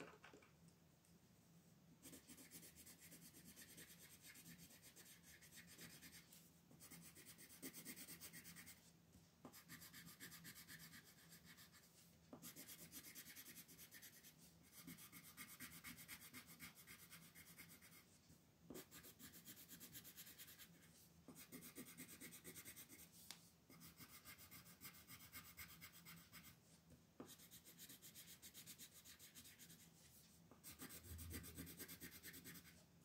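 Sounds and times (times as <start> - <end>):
pencil scratching on paper: 2.0 - 32.8.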